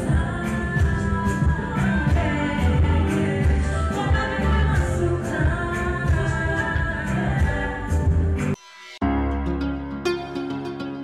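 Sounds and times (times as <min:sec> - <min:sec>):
woman singing into a microphone: 0:00.0 - 0:08.6
amplified pop music with bass beat: 0:00.0 - 0:11.0.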